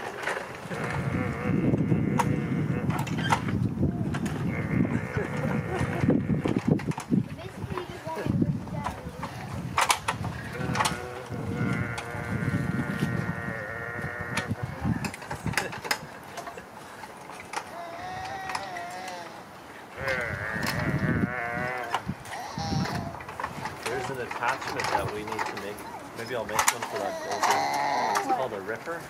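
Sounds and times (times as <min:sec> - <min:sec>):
toddler whining: 0:17.5 - 0:23.3, 0:26.8 - 0:28.5.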